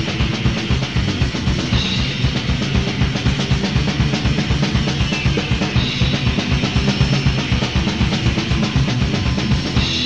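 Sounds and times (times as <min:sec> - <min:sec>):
distorted electric guitar: 0:00.0 - 0:10.0
drum kit beat: 0:00.0 - 0:10.0.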